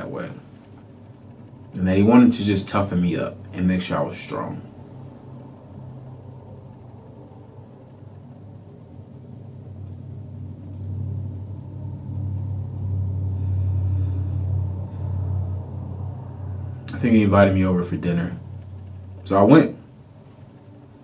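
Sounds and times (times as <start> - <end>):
low rumble: 0.0 - 21.0.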